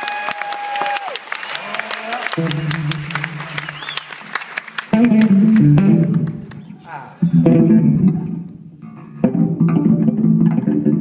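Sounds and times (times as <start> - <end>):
audience applause: 0.0 - 7.0
long whistle: 3.4 - 4.1
electric bass guitar low note: 7.2 - 11.0.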